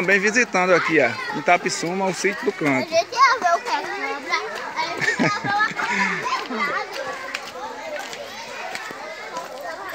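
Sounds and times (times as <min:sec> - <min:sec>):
children talking and calling out: 0:00.0 - 0:09.9.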